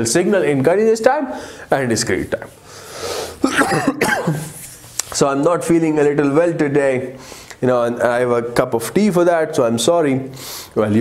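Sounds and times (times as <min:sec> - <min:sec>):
man clearing throat: 0:03.4 - 0:04.6
man coughing: 0:03.4 - 0:04.6.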